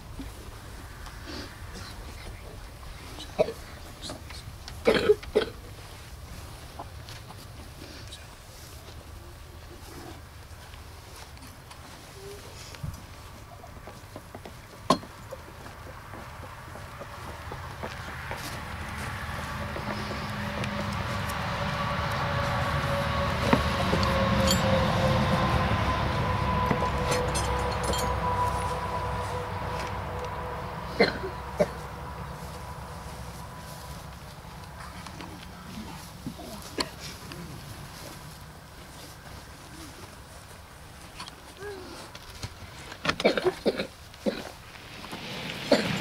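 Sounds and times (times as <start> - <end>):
passing engine whine: 15.2 - 41.4, 44.5 - 46.0
sharp metal clinks: 24.4 - 24.9, 27.1 - 28.7.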